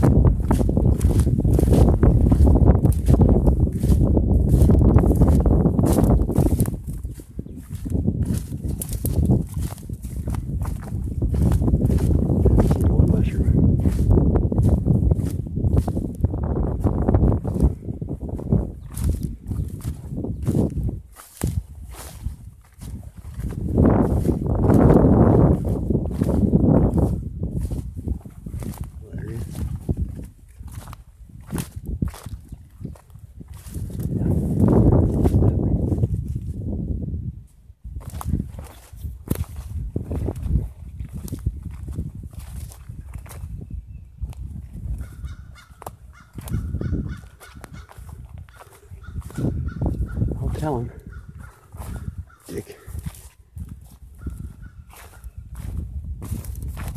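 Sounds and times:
footsteps through dry grass: 0:00.0 - 0:56.9
branches brushing: 0:00.4 - 0:16.1, 0:45.6 - 0:56.9
twigs snapping: 0:08.3 - 0:09.8.

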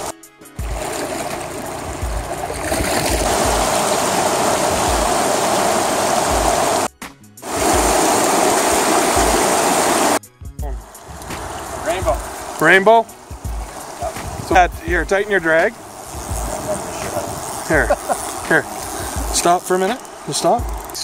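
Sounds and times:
water rushing over rocks: 0:00.0 - 0:10.2, 0:10.8 - 0:21.0.

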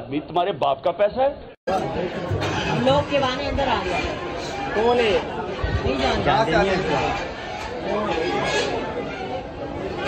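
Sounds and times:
men talking: 0:00.0 - 0:02.8.

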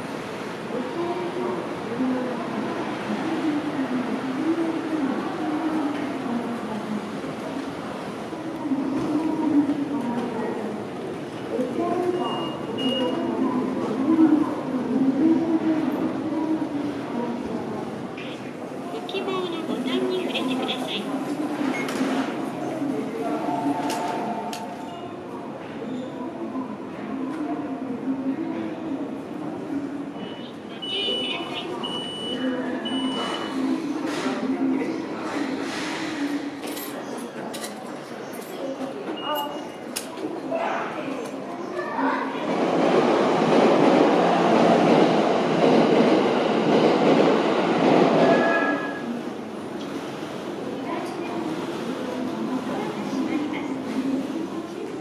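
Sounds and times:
people's voices: 0:00.0 - 0:55.0.

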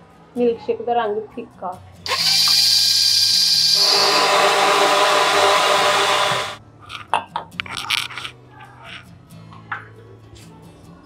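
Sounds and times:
electric blender running: 0:02.1 - 0:06.6.

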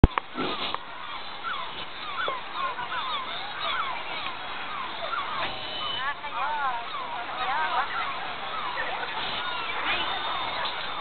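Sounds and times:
animal or bird calls: 0:00.0 - 0:11.0.

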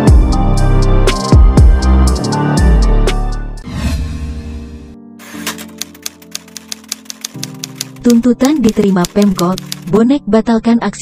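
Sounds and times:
background music pad: 0:00.0 - 0:10.2
typewriter key clicks: 0:05.3 - 0:09.9.

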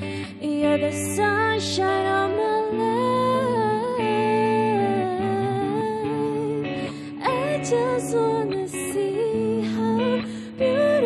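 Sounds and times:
woman singing ballad: 0:00.0 - 0:11.0.

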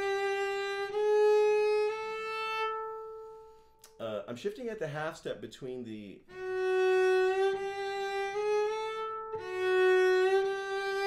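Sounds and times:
bowed cello notes: 0:00.0 - 0:03.9, 0:06.2 - 0:11.0.

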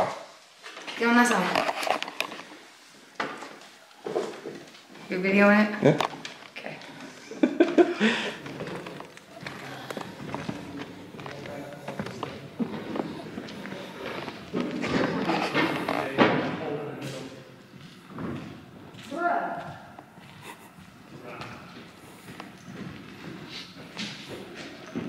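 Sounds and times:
footsteps on wooden floor: 0:01.5 - 0:05.3, 0:06.0 - 0:25.0
indistinct echoing voices: 0:03.1 - 0:25.0.

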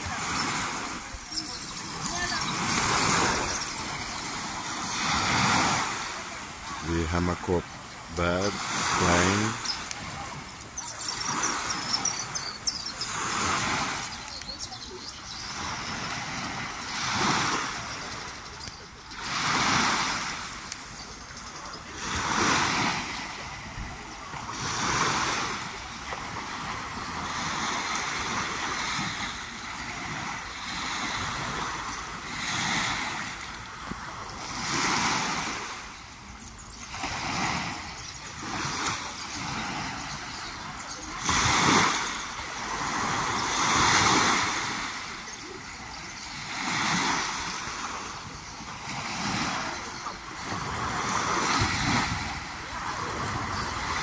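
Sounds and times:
waves washing on shore: 0:00.0 - 0:54.0.

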